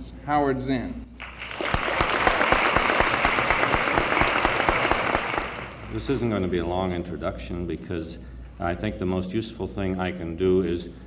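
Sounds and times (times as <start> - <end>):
audience applauding: 1.2 - 6.1.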